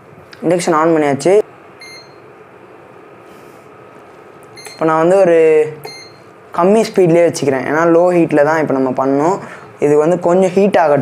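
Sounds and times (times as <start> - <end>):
cooktop control panel beep: 1.8 - 2.2, 4.5 - 4.9, 5.8 - 6.3.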